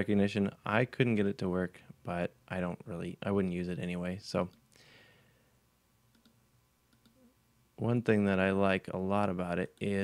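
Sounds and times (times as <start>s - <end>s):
computer mouse clicks: 6.1s - 7.3s.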